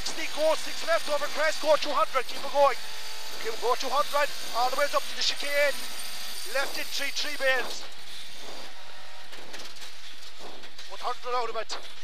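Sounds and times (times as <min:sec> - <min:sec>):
car engine at speed: 0:00.0 - 0:11.0.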